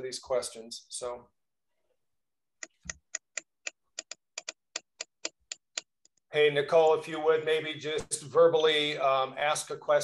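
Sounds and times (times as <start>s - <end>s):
computer mouse or keyboard clicks: 2.6s - 6.2s.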